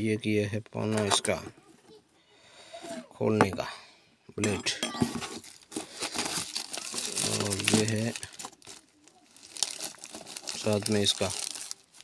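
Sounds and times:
plastic wrapping crinkling: 5.2 - 12.0.

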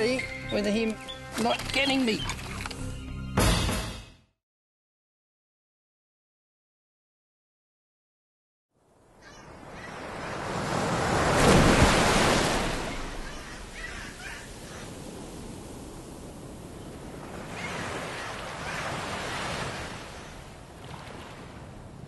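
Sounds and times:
wind: 0.0 - 3.2, 8.7 - 22.0
ocean waves: 8.8 - 22.0.

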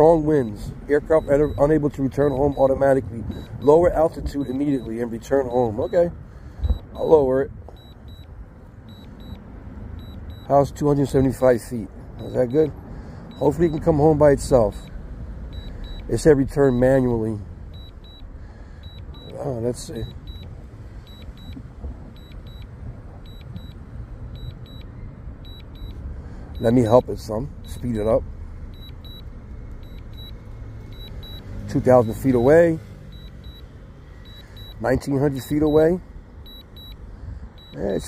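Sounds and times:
steady low rumble: 0.0 - 10.5, 11.1 - 31.4
high double beeps: 0.4 - 8.3, 8.9 - 9.4, 10.0 - 10.6, 12.2 - 17.1, 17.7 - 20.5, 21.1 - 26.0, 26.6 - 38.0.

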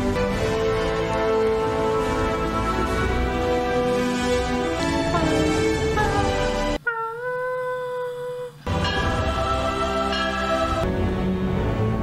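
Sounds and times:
orchestral film score: 0.0 - 6.8, 8.7 - 12.0.

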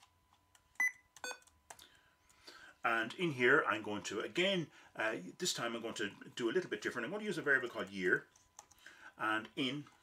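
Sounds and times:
faint keyboard clicks: 7.7 - 8.9.

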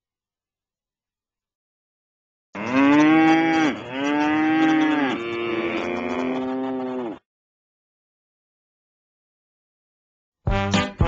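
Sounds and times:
cattle mooing: 2.6 - 7.2.

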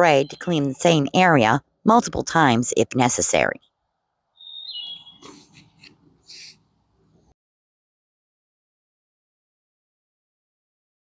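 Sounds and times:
faint bird chirps: 0.0 - 0.7, 4.4 - 6.6.

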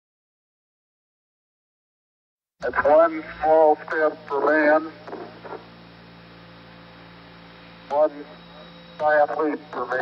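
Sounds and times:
man speaking over radio: 2.6 - 5.6, 7.9 - 10.0
radio transmission hum and hiss: 2.6 - 10.0.

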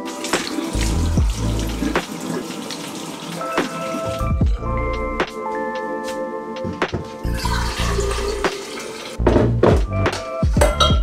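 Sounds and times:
water running in kitchen sink: 0.0 - 4.5, 7.2 - 9.2
background music: 0.0 - 11.0.

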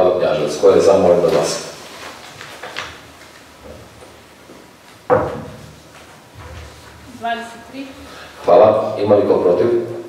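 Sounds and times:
paper handling: 1.2 - 4.1
sharp knock: 5.1 - 5.6.

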